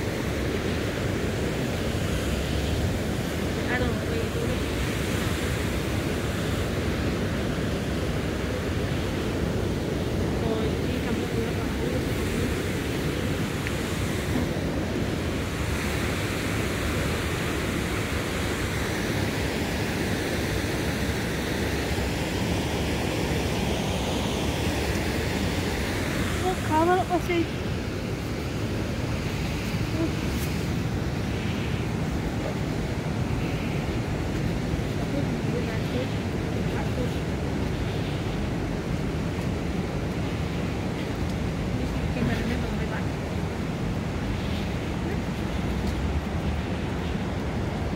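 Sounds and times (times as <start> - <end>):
fast-flowing river rushing: 0.0 - 47.9
wind rumbling on microphone: 0.0 - 47.9.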